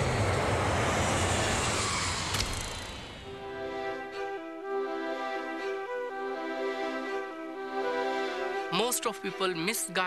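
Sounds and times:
jet aircraft flying past: 0:00.0 - 0:04.3.

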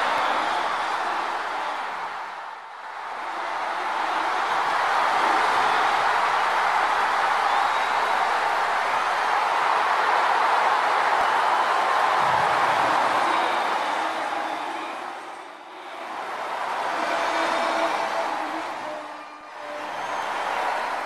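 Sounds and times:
stadium crowd cheering: 0:00.0 - 0:21.0.

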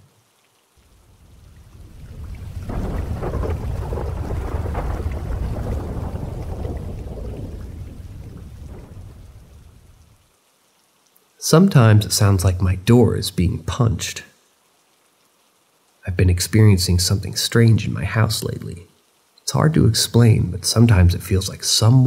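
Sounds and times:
rain: 0:00.0 - 0:22.0
rolling thunder rumble: 0:01.0 - 0:10.2.

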